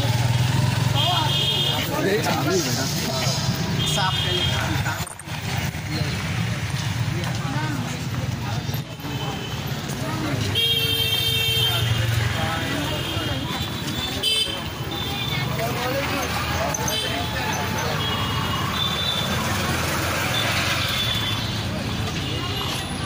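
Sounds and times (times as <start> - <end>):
traffic noise: 0.0 - 23.0
people talking: 0.9 - 10.8, 11.4 - 23.0.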